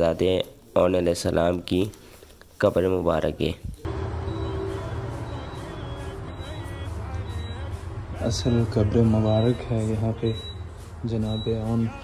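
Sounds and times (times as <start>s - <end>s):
many voices chanting: 3.9s - 9.6s
low rumble: 3.9s - 11.2s.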